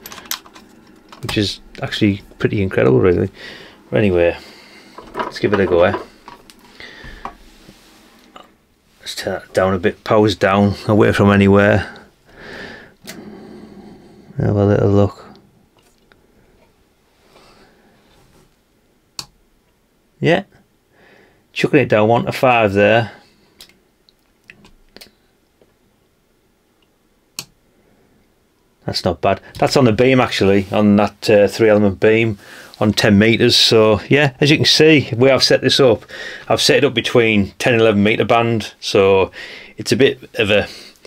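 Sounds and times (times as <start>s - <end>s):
faint small clicks: 26.8s - 27.6s.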